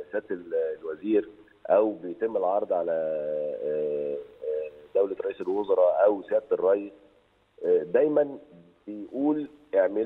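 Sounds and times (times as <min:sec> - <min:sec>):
man saying uhh over telephone: 0:00.0 - 0:06.9, 0:07.6 - 0:10.0.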